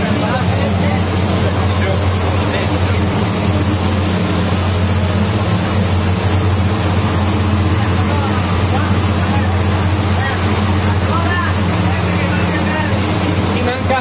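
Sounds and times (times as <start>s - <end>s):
engine running steadily: 0.0s - 14.0s
faint voices: 6.9s - 14.0s.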